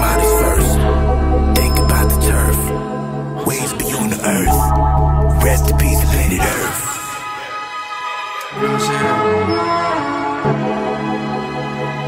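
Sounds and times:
hip hop beat: 0.0 - 11.0.

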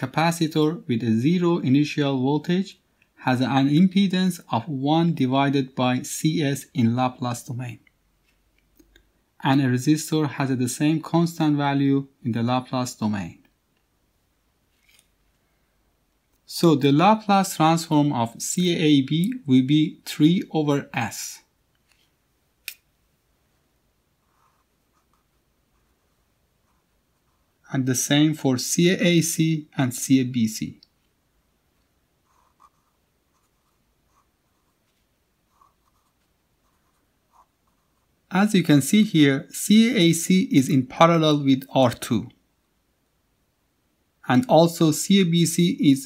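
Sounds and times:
marker scratching on paper: 24.2 - 27.6, 32.2 - 38.1.

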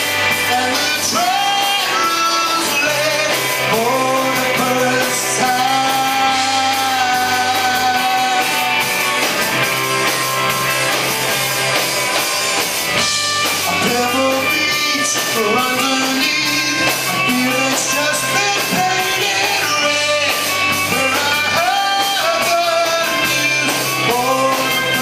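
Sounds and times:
man singing lead: 0.0 - 9.1, 13.0 - 25.0
drum kit: 0.0 - 25.0
electric guitars: 0.0 - 25.0.

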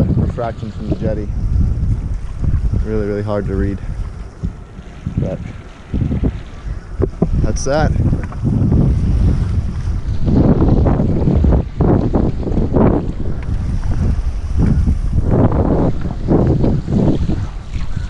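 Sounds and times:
rushing water: 0.0 - 18.0
wind buffeting microphone: 0.0 - 18.0.

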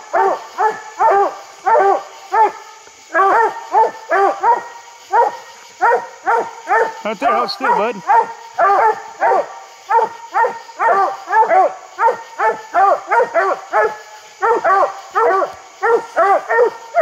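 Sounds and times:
hounds barking: 0.1 - 17.0.

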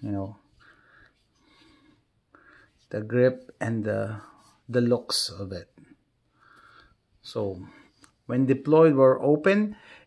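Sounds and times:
man talking: 0.0 - 0.5, 2.9 - 5.8, 7.2 - 9.8.

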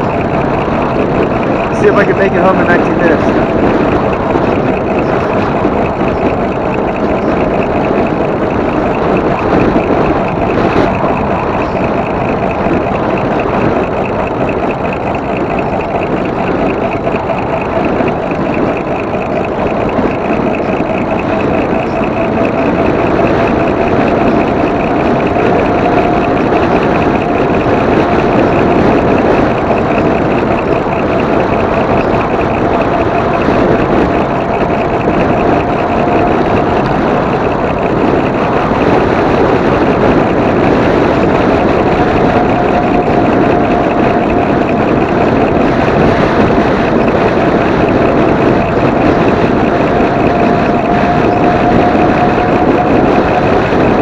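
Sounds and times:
electric motor whine: 0.0 - 54.0
wind rush: 0.0 - 54.0.

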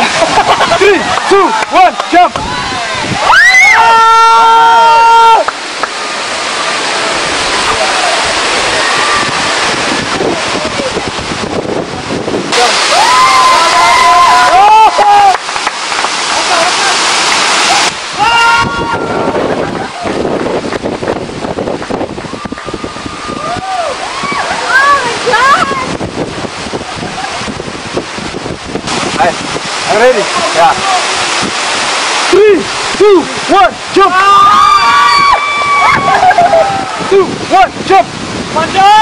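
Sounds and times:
wind buffeting microphone: 0.0 - 3.5, 5.6 - 16.3, 17.3 - 39.0
waterfall rushing: 0.0 - 39.0.

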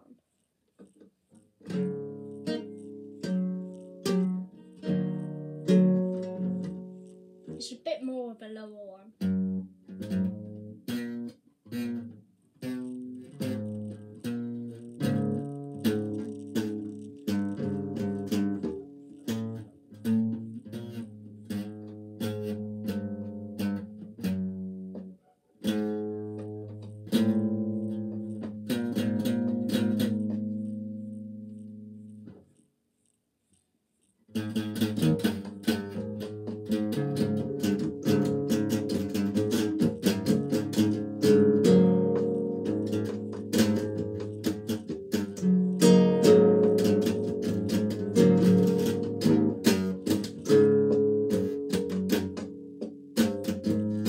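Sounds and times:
acoustic guitar piece: 0.0 - 32.7, 34.2 - 54.0.

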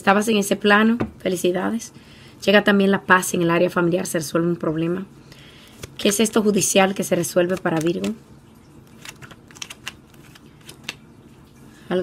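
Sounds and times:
cards clicking and tapping: 7.5 - 8.2, 8.9 - 11.0.

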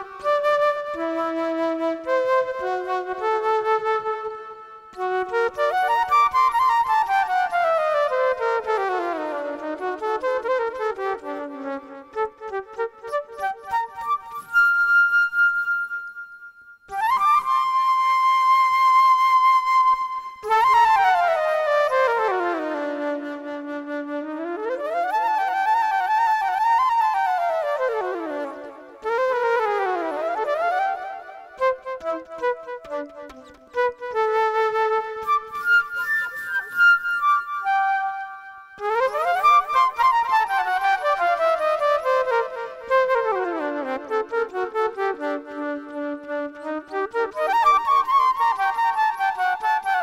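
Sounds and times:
solo flute improvising: 0.0 - 50.0.

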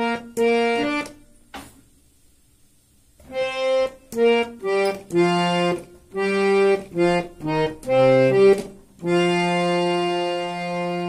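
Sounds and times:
harmonium holding a note: 0.0 - 1.2, 3.3 - 11.0.

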